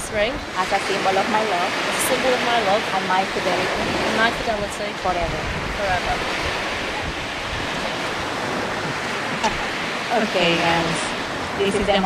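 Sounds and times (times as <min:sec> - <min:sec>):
surf on a beach: 0:00.0 - 0:12.0
wind: 0:00.0 - 0:12.0
wind buffeting microphone: 0:00.0 - 0:12.0.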